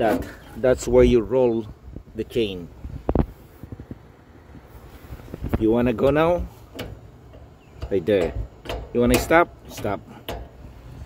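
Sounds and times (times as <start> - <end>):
low rumble on microphone: 0.0 - 8.9.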